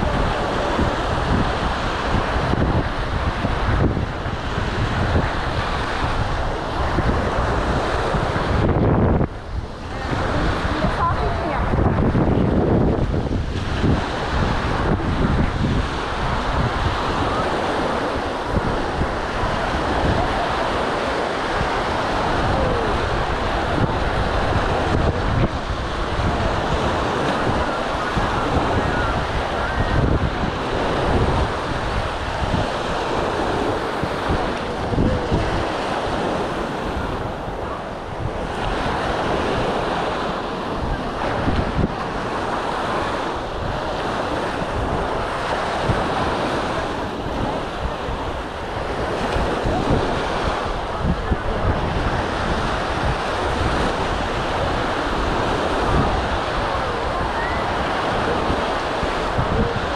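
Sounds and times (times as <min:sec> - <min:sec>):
small waves breaking on beach: 0:00.0 - 0:59.9
wind rumbling on microphone: 0:00.0 - 0:59.9.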